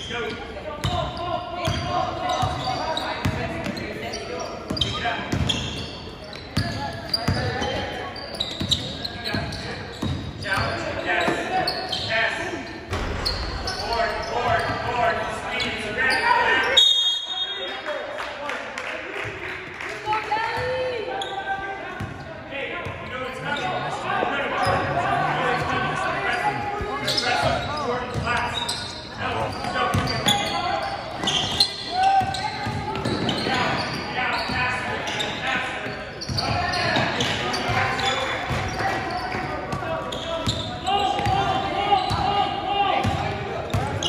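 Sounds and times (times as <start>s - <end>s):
people calling out in a hall: 19.8s - 22.4s, 23.5s - 44.0s.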